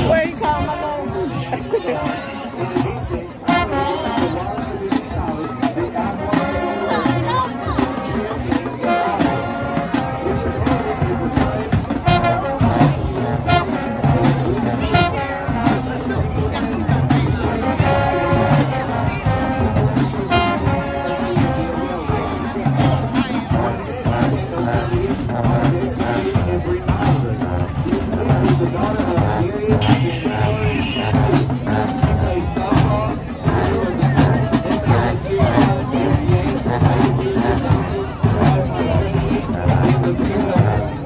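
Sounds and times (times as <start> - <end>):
crowd chatter: 0.0 - 41.0
marching band brass playing: 0.0 - 41.0.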